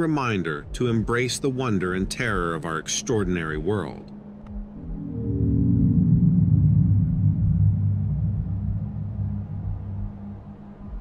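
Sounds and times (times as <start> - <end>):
low dark soundtrack drone: 0.0 - 11.0.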